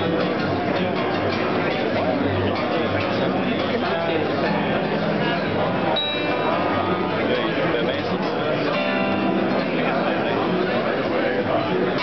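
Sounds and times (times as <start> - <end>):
harp guitar fingerstyle: 0.0 - 12.0.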